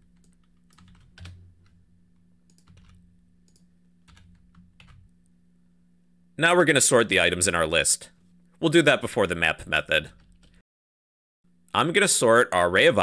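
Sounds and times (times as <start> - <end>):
low steady hum: 0.0 - 10.6
typing on computer keyboard: 0.2 - 1.8, 2.5 - 5.0.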